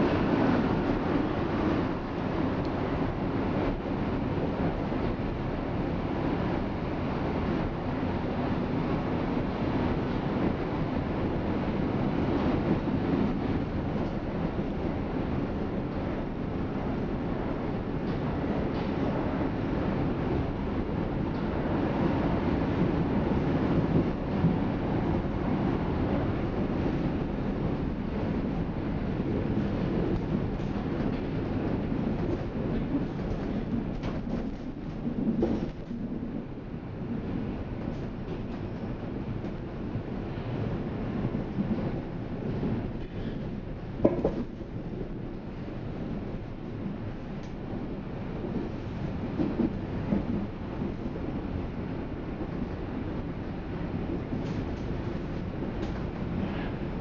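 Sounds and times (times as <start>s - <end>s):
train wheels rumbling on track: 0.0s - 57.0s.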